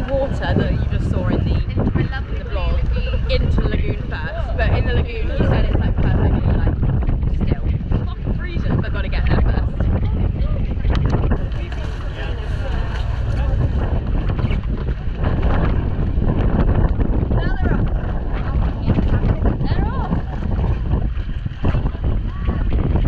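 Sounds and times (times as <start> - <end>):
wind noise on microphone: 0.0 - 23.0.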